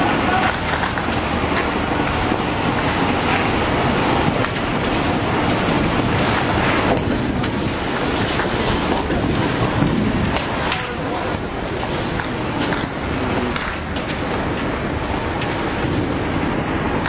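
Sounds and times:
rushing rumble of dust cloud: 0:00.0 - 0:17.0.

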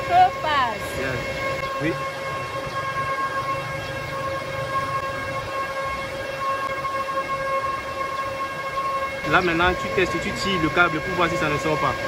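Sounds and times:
high-pitched electrical whine: 0:09.2 - 0:12.0.

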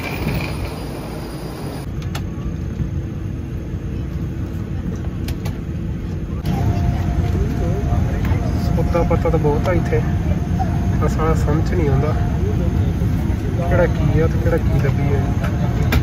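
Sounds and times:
airliner cabin rumble: 0:00.0 - 0:16.0
faint voices murmuring: 0:03.6 - 0:16.0
steady hum: 0:05.9 - 0:16.0.

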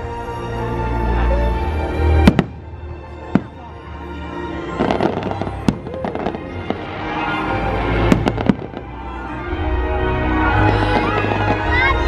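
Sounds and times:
music soundtrack: 0:00.0 - 0:12.0
fireworks bursting: 0:02.2 - 0:03.8, 0:04.7 - 0:09.2.

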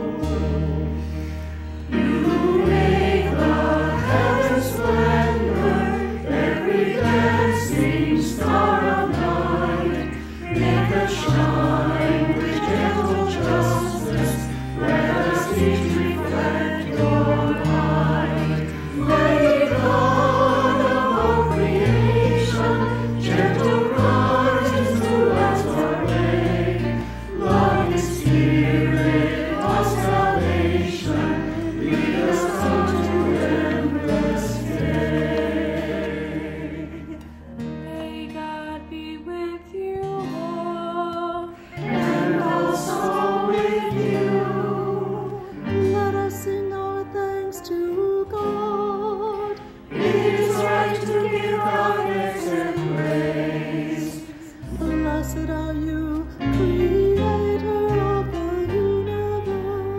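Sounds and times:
mixed choir singing a hymn: 0:00.0 - 0:37.3, 0:41.5 - 0:59.9
acoustic guitar: 0:00.0 - 0:59.9.

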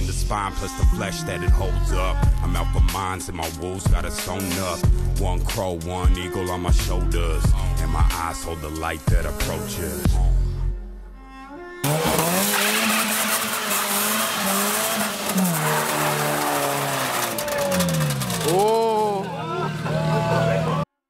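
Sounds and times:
car engine revving hard: 0:11.8 - 0:20.8
tyres squealing: 0:11.8 - 0:20.8.

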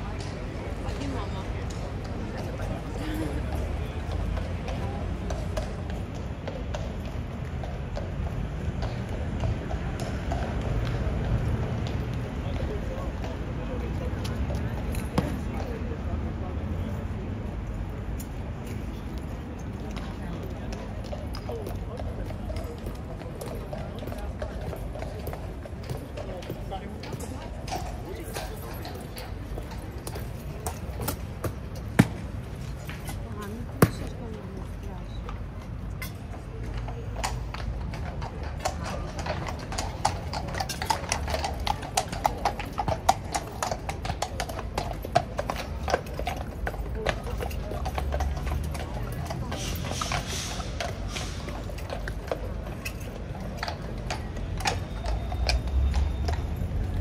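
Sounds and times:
indistinct voices talking: 0:18.5 - 0:57.0.

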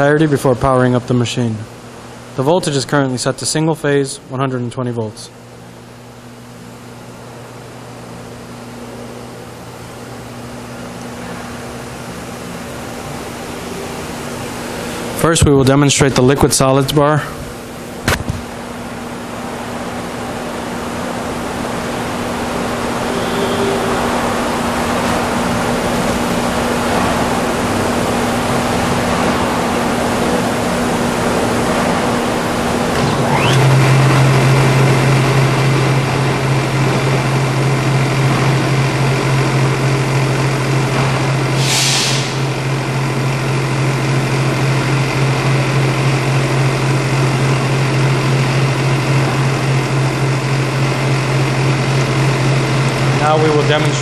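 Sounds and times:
mechanical hum and whir: 0:00.0 - 0:54.0
mixer electric drive humming: 0:00.0 - 0:54.0
brief hiss: 0:41.6 - 0:42.5.

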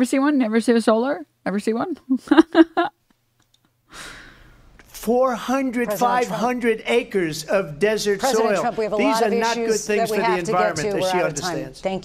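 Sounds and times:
woman sighing: 0:03.9 - 0:04.6.

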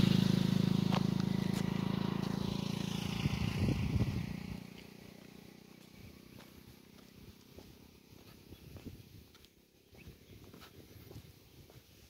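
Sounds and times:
engine running: 0:00.0 - 0:09.7
faint outdoor background: 0:00.0 - 0:12.0.

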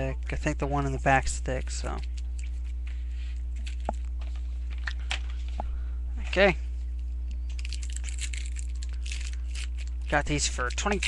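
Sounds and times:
steady low hum: 0:00.0 - 0:11.0
wrapper crinkling and tearing: 0:03.6 - 0:04.0, 0:07.5 - 0:11.0.

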